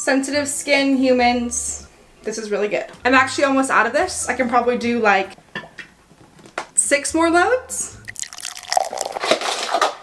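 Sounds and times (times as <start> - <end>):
liquid detergent pouring and splashing: 8.1 - 9.9.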